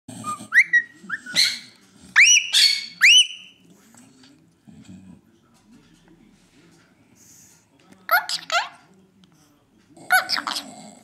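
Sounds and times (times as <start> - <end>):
parakeet chirping: 0.5 - 3.6.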